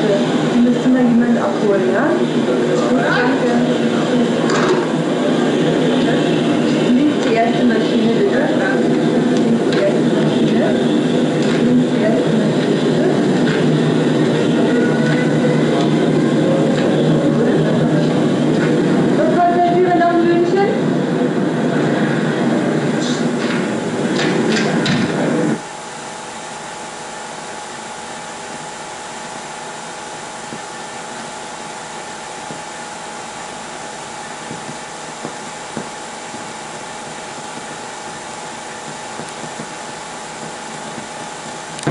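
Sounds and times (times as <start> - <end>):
faint hum: 0.0 - 41.9
film sound track hiss: 5.2 - 41.9.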